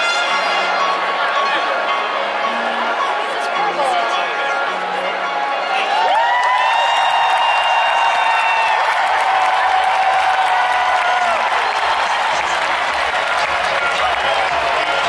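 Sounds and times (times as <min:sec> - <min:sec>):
stadium crowd cheering and applauding: 0:00.0 - 0:15.0
high cheers: 0:05.6 - 0:15.0.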